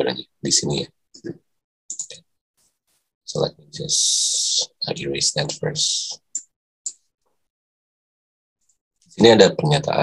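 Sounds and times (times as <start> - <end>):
computer mouse clicking: 1.9 - 2.2.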